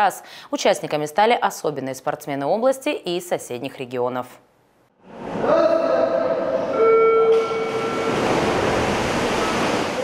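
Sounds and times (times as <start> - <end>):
swimmers splashing: 5.0 - 10.0.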